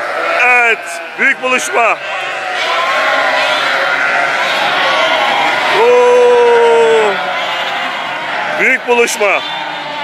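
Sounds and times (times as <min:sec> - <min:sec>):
sheep bleating: 0:00.0 - 0:10.0
man calling drawn-out oo: 0:05.8 - 0:07.2.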